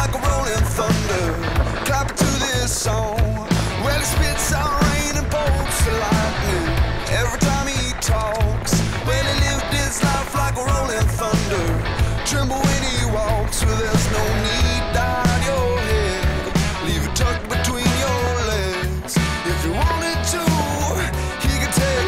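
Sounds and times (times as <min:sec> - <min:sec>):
rock music: 0:00.0 - 0:22.0.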